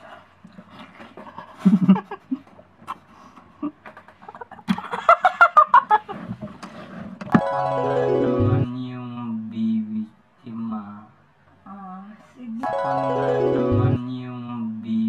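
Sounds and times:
people laughing: 0:01.5 - 0:02.5, 0:03.6 - 0:06.4
keyboard music: 0:07.4 - 0:09.0, 0:12.6 - 0:14.5.

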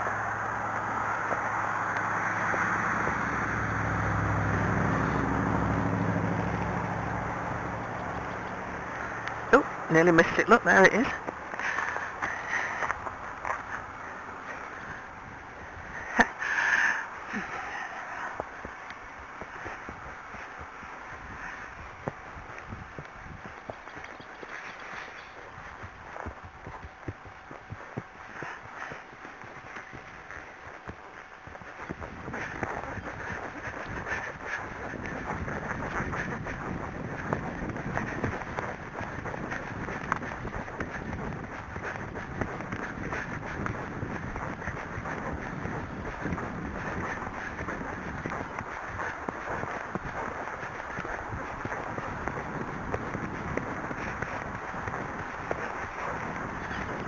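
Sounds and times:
horse hoofbeats on a track: 0:00.0 - 0:57.0
wind on the microphone: 0:00.0 - 0:57.0.

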